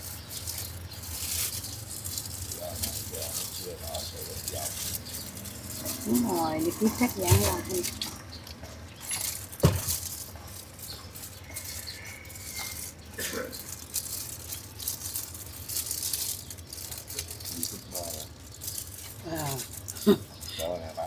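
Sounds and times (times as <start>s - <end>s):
plastic and leaves crinkling: 0.0s - 21.0s.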